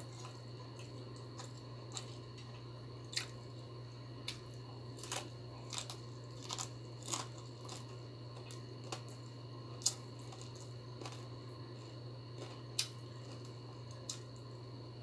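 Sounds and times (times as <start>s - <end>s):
person chewing food: 0.0s - 3.6s, 4.2s - 14.5s.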